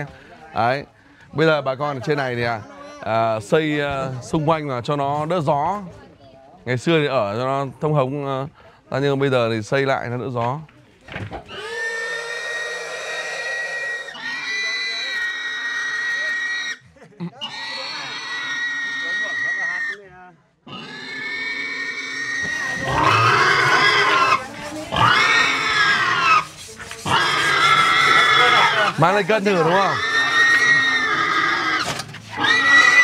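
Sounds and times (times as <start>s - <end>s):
pig squealing: 11.5s - 16.8s, 17.4s - 20.0s, 20.7s - 33.0s.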